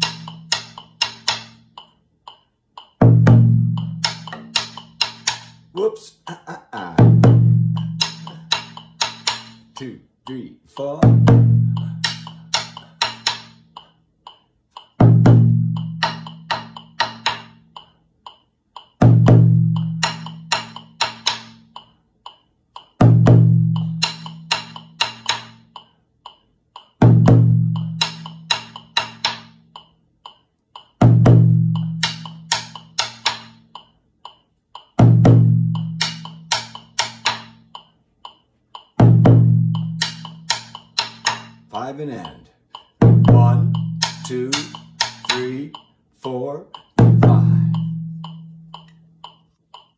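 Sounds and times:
metronome ticking: 0.0s - 49.9s
sharp stick strokes on drum: 31.8s - 49.9s.

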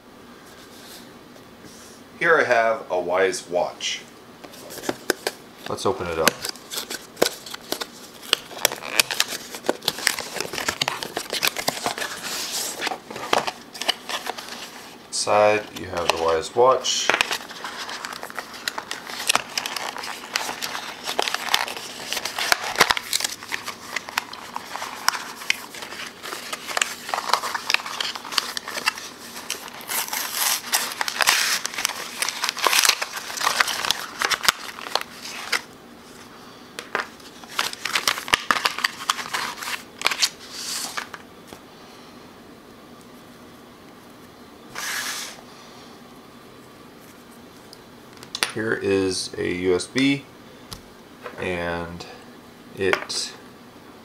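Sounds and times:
packaging rustling: 4.5s - 41.2s.

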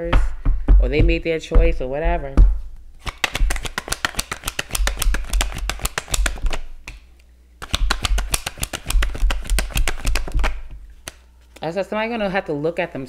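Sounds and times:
cards being shuffled: 3.0s - 7.0s, 7.6s - 11.7s.

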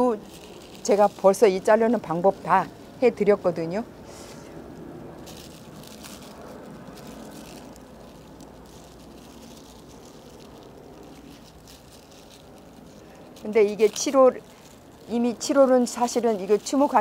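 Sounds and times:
low background rumble: 0.0s - 17.0s
plastic film crinkling: 0.0s - 17.0s.

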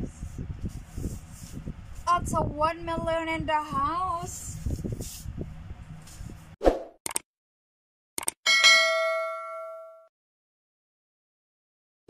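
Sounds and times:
short clicks: 8.2s - 8.4s
notification bell ding: 8.5s - 10.1s.

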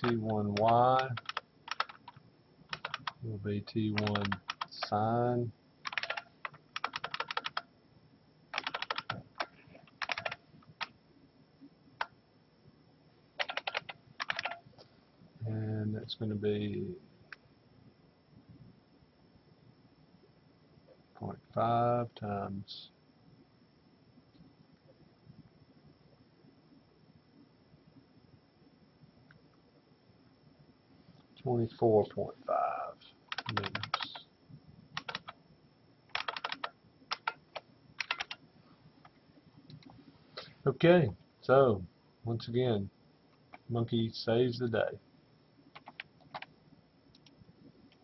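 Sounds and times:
typing on computer keyboard: 0.0s - 3.2s, 3.9s - 5.0s, 5.8s - 7.7s, 8.5s - 10.9s, 13.4s - 14.6s, 33.3s - 34.2s, 35.0s - 35.4s, 36.1s - 38.4s, 45.7s - 46.5s.

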